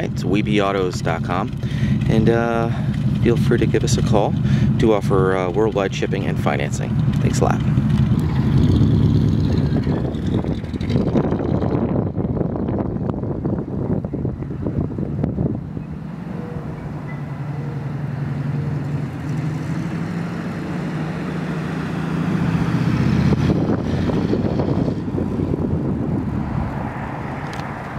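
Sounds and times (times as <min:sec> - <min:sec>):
car engine driving: 0:00.0 - 0:27.9.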